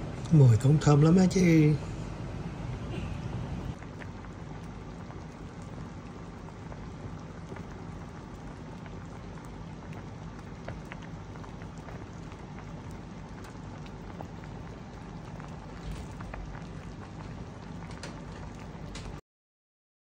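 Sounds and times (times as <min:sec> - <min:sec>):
broth bubbling in a pot: 0:00.0 - 0:19.2.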